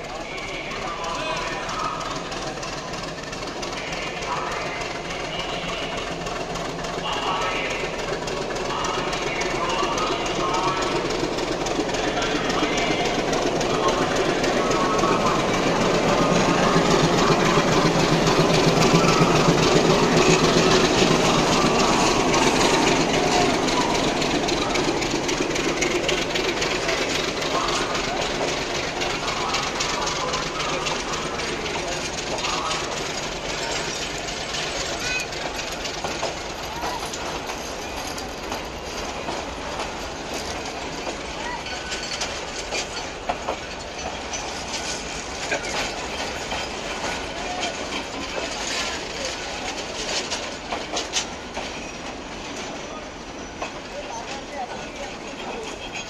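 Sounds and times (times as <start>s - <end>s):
diesel locomotive engine: 0.0s - 56.0s
train wheels clicking over rail joints: 0.0s - 56.0s.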